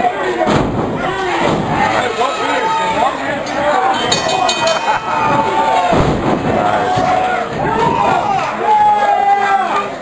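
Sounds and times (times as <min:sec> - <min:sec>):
crowd voices and shouting: 0:00.0 - 0:10.0.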